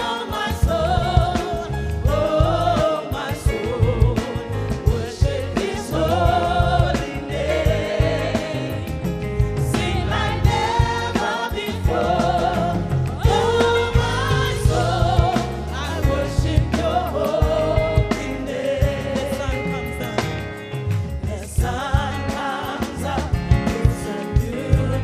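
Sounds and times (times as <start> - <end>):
woman singing into a microphone: 0.0 - 7.4, 21.2 - 25.0
band with strong bass line: 0.0 - 25.0
congregation singing along: 0.0 - 25.0.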